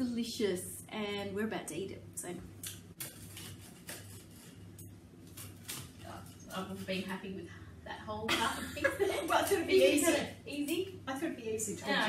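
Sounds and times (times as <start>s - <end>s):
low steady hum: 0.0s - 12.0s
knife cutting toasted bread: 3.0s - 6.4s.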